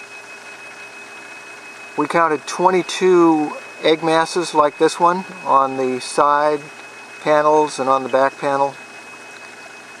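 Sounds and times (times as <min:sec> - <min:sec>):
aquarium water hissing: 0:00.0 - 0:10.0
thin high whine: 0:00.0 - 0:10.0.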